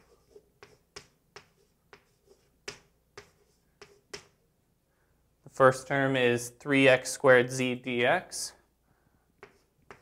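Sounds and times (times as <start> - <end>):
chalk tapping on blackboard: 0.0 - 4.4, 9.4 - 10.0.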